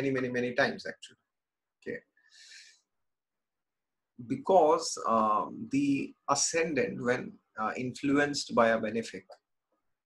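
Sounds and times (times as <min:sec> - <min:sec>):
faint short breath: 0:02.2 - 0:02.9.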